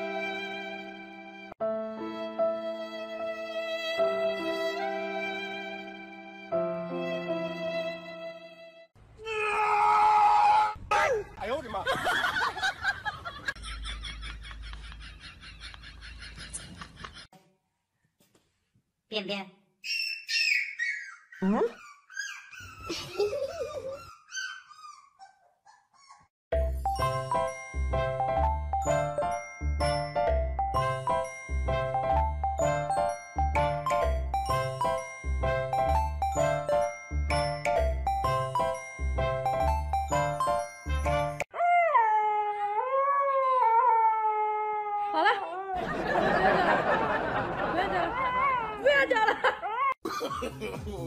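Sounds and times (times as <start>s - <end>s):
puppy howling and yelping: 19.8s - 26.3s, 41.6s - 45.8s
chiming music: 26.5s - 41.5s
puppy howling: 41.6s - 45.8s.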